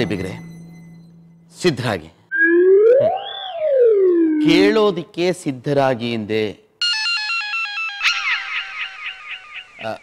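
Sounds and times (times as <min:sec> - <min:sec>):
gliding tone rising and falling: 0:02.3 - 0:04.7.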